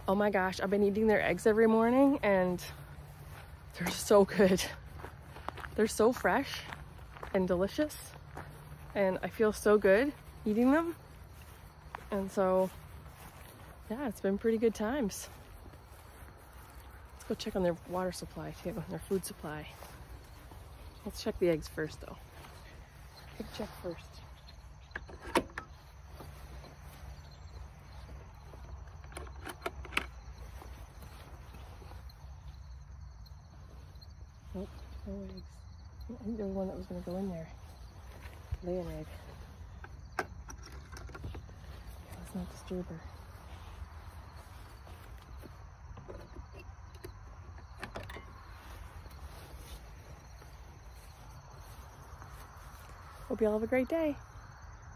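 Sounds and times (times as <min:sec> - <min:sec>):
soft rustles: 0:02.6 - 0:24.9, 0:41.2 - 0:45.6, 0:48.2 - 0:53.6.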